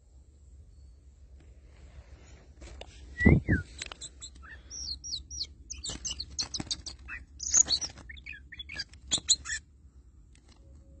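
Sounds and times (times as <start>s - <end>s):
harsh bird chirps: 3.1s - 9.7s
bird whistling rapid notes: 3.2s - 9.6s.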